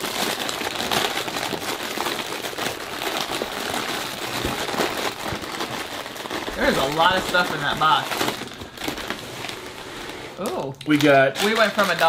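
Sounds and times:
plastic packets rustling: 0.0s - 12.0s.

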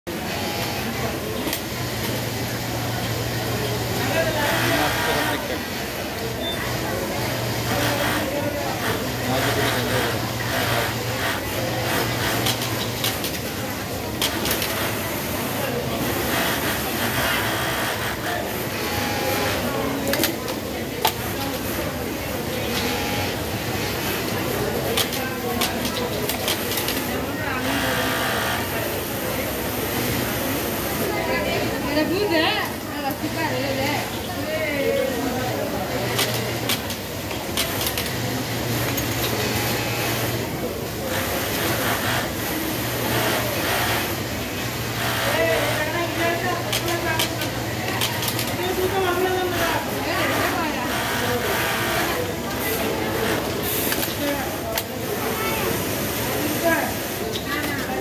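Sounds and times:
sewing machine whirring: 0.2s - 58.0s.

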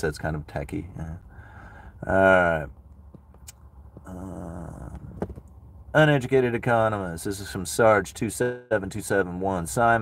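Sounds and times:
man humming hmm: 4.0s - 5.1s.

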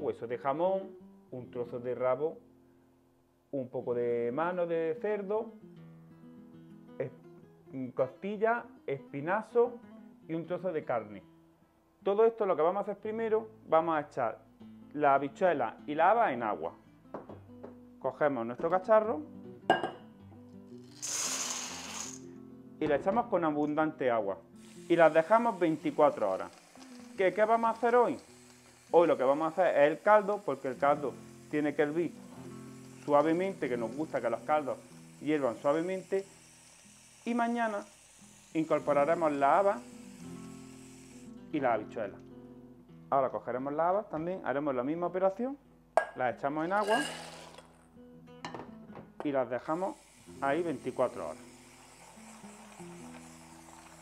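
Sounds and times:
soft background music: 0.0s - 2.4s, 3.6s - 46.8s, 47.8s - 54.0s
dishware clink: 19.7s - 20.0s
dried beans pouring into metal bowl: 20.8s - 22.2s, 24.7s - 41.2s, 46.7s - 47.8s, 49.8s - 54.0s
beans rattling into metal bowl: 20.9s - 22.2s.

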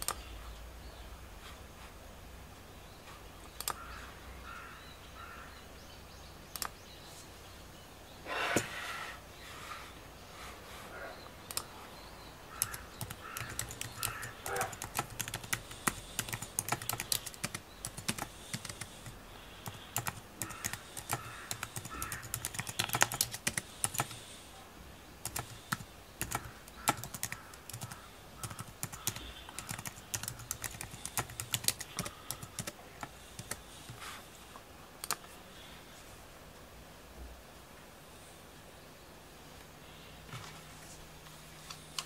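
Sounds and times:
sharp clicks: 3.5s - 3.8s, 6.5s - 6.8s, 11.5s - 11.7s, 12.6s - 24.2s, 35.0s - 35.3s.

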